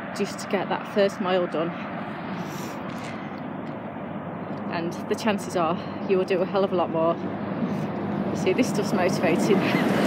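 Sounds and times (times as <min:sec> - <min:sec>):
lorry traffic on a road: 0:00.0 - 0:10.0.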